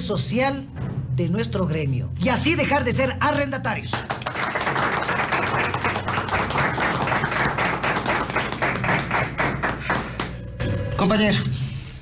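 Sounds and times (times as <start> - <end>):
people applauding: 3.7 - 10.4.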